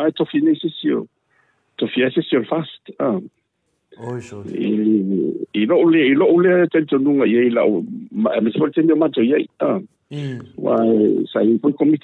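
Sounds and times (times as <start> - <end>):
man holding a drawn-out sound: 4.0 - 4.6
man talking: 4.0 - 4.9, 8.3 - 12.0.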